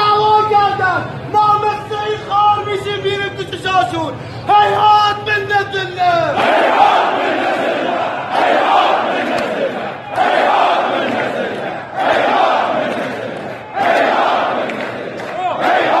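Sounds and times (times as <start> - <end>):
crowd chanting slogans in unison: 6.3 - 16.0.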